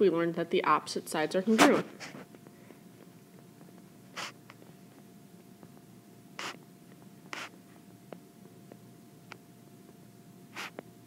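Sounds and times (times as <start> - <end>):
scratchy handwriting strokes: 6.4 - 6.6, 7.3 - 7.6.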